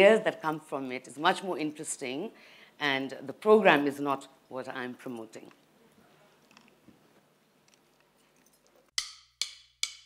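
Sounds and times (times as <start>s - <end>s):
sharp percussive clicks: 9.0s - 10.0s.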